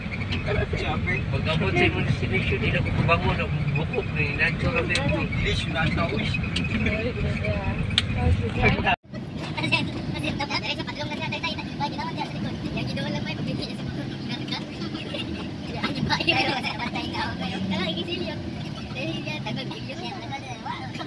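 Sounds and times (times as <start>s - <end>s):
car engine hum and road noise: 0.0s - 21.0s
voices talking in car: 0.0s - 21.0s.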